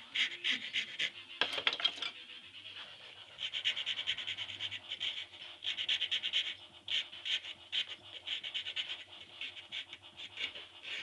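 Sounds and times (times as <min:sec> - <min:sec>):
hand file scraping wood: 0:00.0 - 0:01.3, 0:03.0 - 0:11.0.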